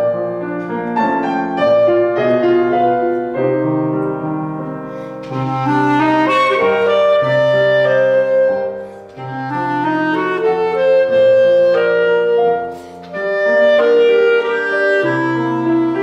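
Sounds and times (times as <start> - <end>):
clarinet solo: 0.0 - 4.0, 4.9 - 16.0
grand piano accompaniment: 0.0 - 16.0.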